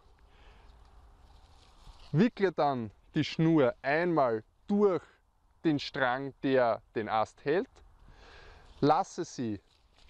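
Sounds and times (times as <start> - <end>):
soft rustle of hands: 0.0 - 2.4, 7.8 - 10.0.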